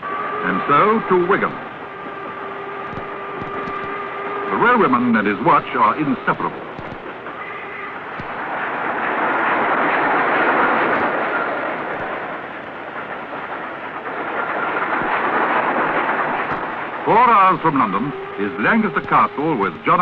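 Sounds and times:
steam train rushing past: 0.0s - 20.0s.

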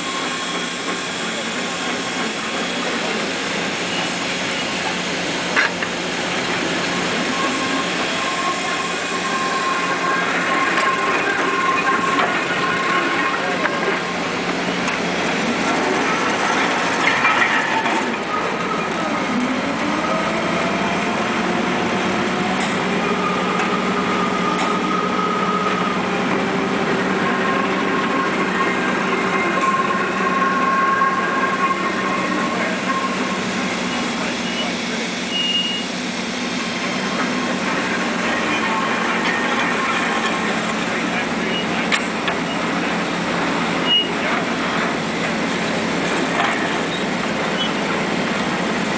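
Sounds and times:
gears grinding: 6.4s - 34.4s, 36.8s - 45.4s.

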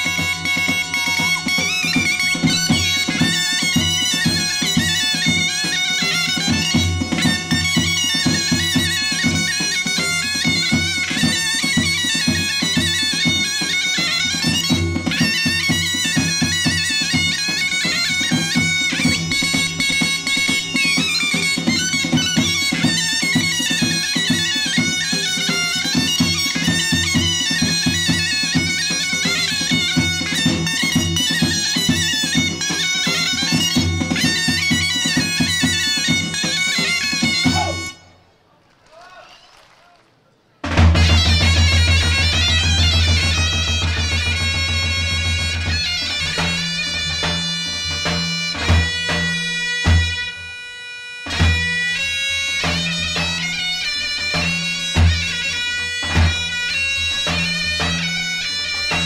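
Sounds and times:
drum beat: 0.0s - 38.0s, 40.7s - 50.1s, 54.1s - 59.0s
fast wind instrument melody: 0.0s - 38.2s, 40.8s - 59.0s.

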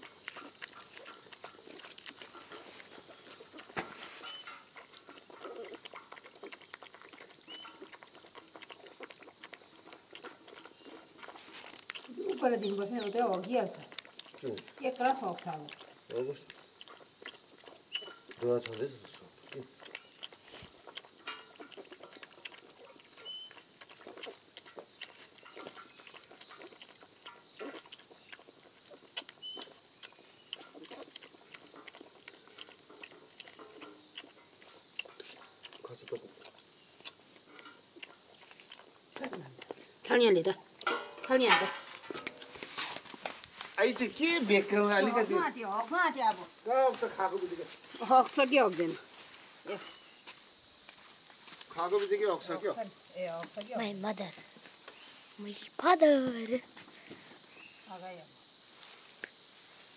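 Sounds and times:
puppies lapping milk: 0.0s - 57.3s.

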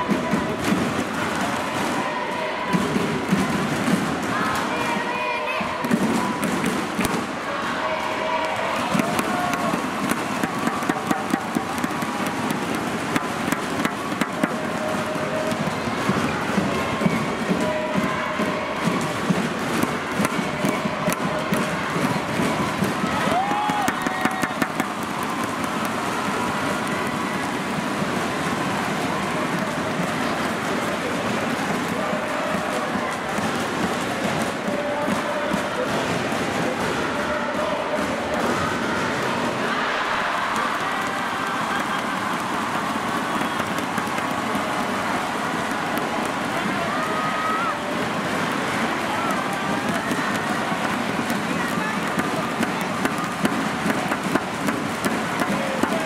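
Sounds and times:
crowd voices and cheering: 0.0s - 56.0s.

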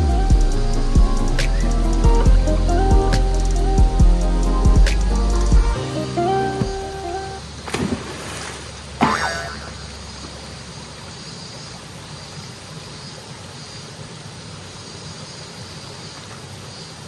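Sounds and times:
stream rushing: 4.8s - 16.6s
person splashing into stream: 7.6s - 10.0s
comedic boing sound effect: 9.0s - 9.8s.

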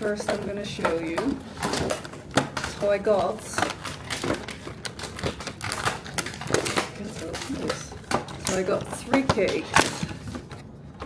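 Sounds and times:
handling clicks and crackles: 0.0s - 10.7s
person speaking: 6.8s - 10.1s.

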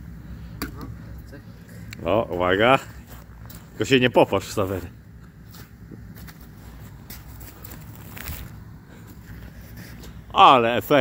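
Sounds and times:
footsteps on frozen snow: 5.3s - 10.2s
clothing rustling: 6.3s - 9.8s.

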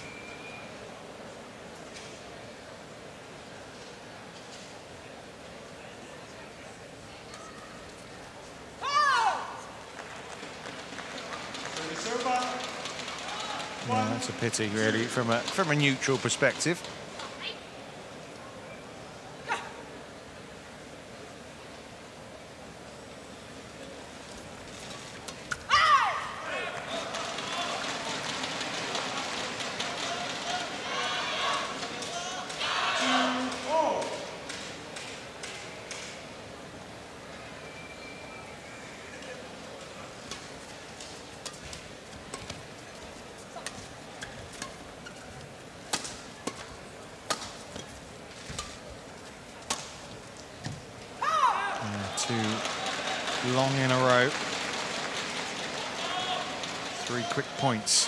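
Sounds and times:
crowd shouting and cheering: 25.7s - 34.5s, 51.2s - 58.0s
racket striking shuttlecock: 45.9s - 47.9s.

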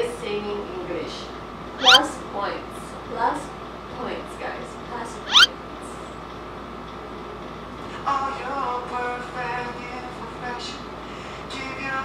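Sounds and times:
high-pitched rising squeak: 1.8s - 2.1s, 5.3s - 5.5s.

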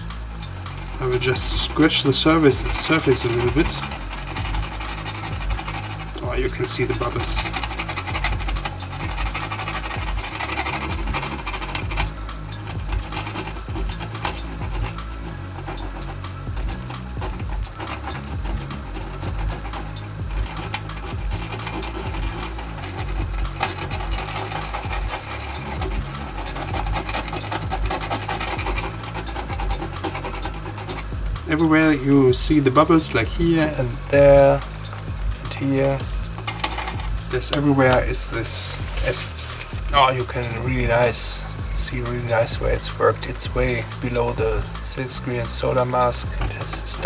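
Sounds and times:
electronic background music: 0.0s - 47.0s
screwdriver scraping circuit board: 0.0s - 47.0s.

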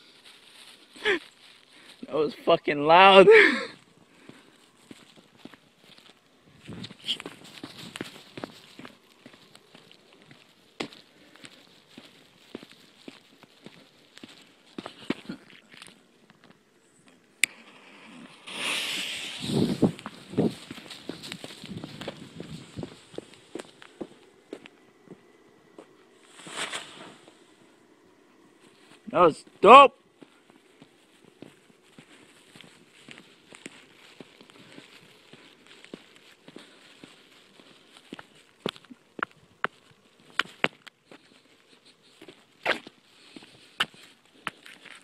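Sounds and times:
fireworks sharp crack: 17.4s - 21.2s, 26.3s - 27.4s
fireworks pops and crackles: 17.4s - 23.8s, 26.3s - 27.3s
fireworks hissing burst: 17.5s - 22.1s, 26.2s - 27.4s
fireworks low bangs: 17.5s - 23.3s.

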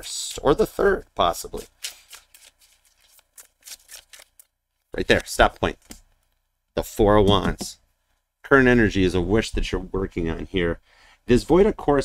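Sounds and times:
cards shuffled by hand: 1.5s - 6.2s.

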